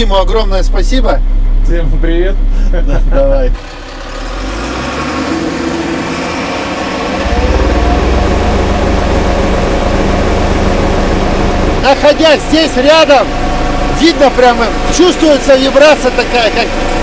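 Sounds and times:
deep low hum: 0:00.0 - 0:17.0
diesel engine running: 0:00.0 - 0:17.0.

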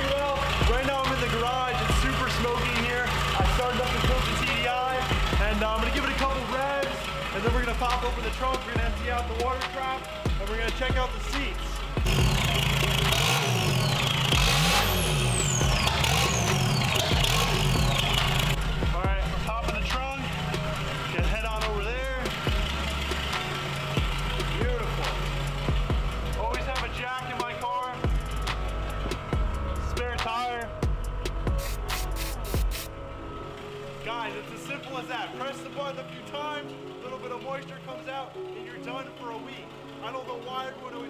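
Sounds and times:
music with heavy bass line: 0:00.0 - 0:33.0
diesel engine revving: 0:00.0 - 0:41.0.

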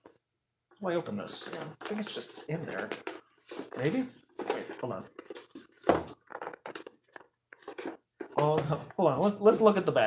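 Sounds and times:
hands handling cardboard box: 0:01.4 - 0:09.7.

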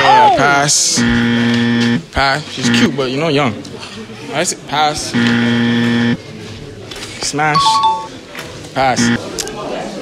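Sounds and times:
game-show buzzer: 0:01.0 - 0:02.0, 0:05.1 - 0:06.2, 0:07.6 - 0:08.2, 0:09.0 - 0:09.2.

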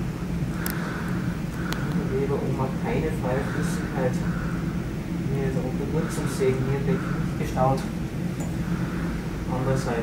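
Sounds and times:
steady low hum: 0:00.0 - 0:10.0
faint clicks: 0:00.5 - 0:02.1.

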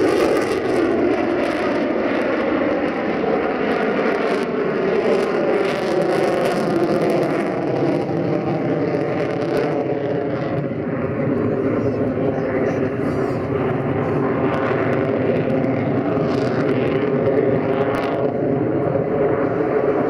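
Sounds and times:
loud jet engine noise: 0:00.0 - 0:20.0.

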